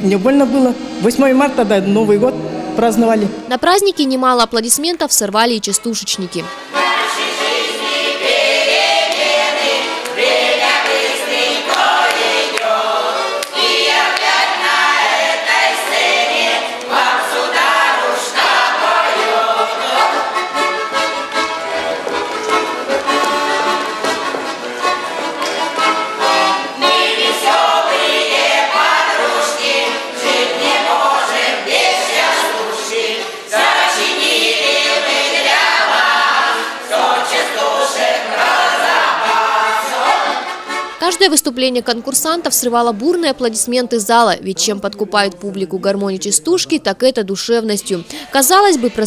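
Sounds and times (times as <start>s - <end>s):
button accordion: 0.0s - 48.8s
group singing folk songs: 6.4s - 41.0s.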